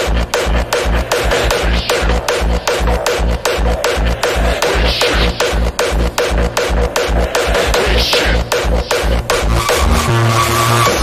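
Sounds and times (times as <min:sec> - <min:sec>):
heavy kick drum beat: 0:00.0 - 0:10.1
gritty noisy synth: 0:00.0 - 0:11.0.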